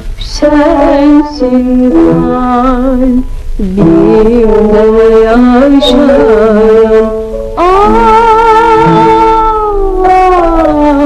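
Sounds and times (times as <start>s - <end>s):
woman singing with vibrato: 0.2s - 11.0s.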